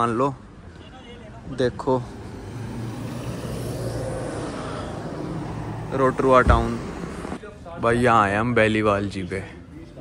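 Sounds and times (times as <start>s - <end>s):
street traffic hum: 0.0s - 10.0s.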